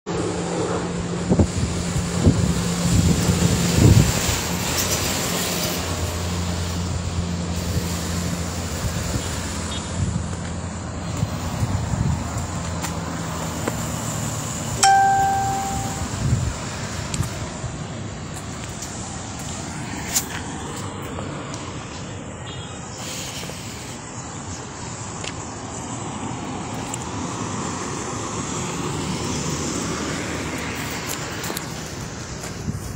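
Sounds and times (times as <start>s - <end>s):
road traffic engine hum: 0.1s - 32.9s
short ringing tone: 14.8s - 16.2s.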